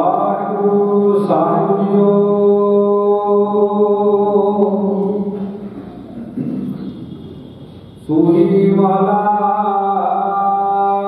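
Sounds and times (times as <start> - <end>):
man chanting into a microphone: 0.0 - 5.6, 8.0 - 11.0.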